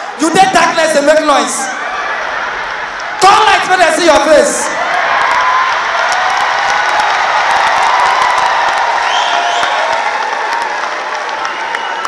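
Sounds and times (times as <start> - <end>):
crowd cheering and clapping: 0.0 - 12.0.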